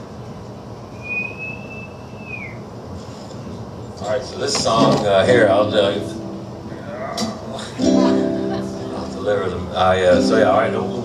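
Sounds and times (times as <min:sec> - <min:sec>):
high whistling tone: 0:00.9 - 0:02.7.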